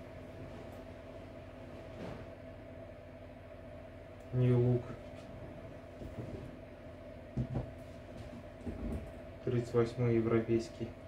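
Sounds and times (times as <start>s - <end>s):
steady background hum: 0.0s - 11.0s
shoes knocking and rustling: 7.3s - 9.1s.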